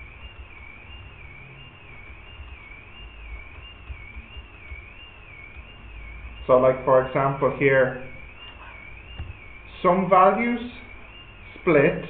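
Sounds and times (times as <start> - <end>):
faint wavering high whine: 0.0 - 12.0.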